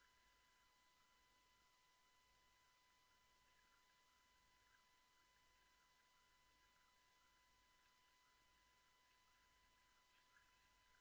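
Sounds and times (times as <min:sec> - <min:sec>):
faint high whine and hiss: 0:00.0 - 0:11.0.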